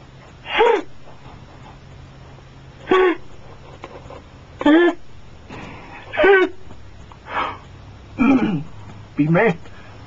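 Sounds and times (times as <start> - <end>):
man whimpering sob: 2.9 - 3.3, 4.6 - 5.0, 6.1 - 6.7.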